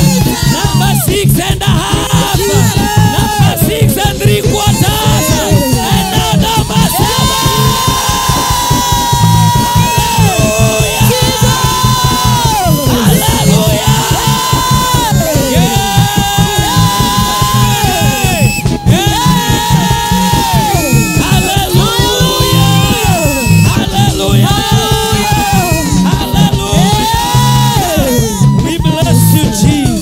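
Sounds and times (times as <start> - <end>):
congregation singing: 0.0 - 30.0
fast driving bass beat: 0.0 - 30.0
person singing long sliding notes: 0.0 - 30.0.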